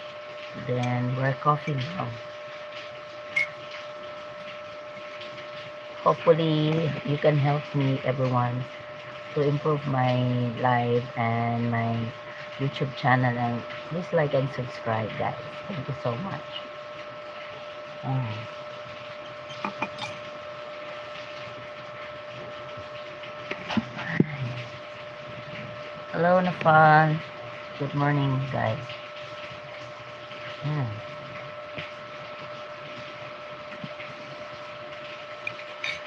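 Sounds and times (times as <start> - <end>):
faint steady hum: 0.0 - 36.0
spoon clinking on ceramic mug: 19.5 - 20.2.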